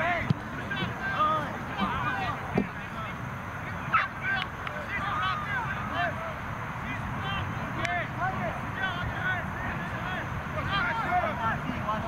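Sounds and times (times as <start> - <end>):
distant voices calling and shouting: 0.0 - 12.0.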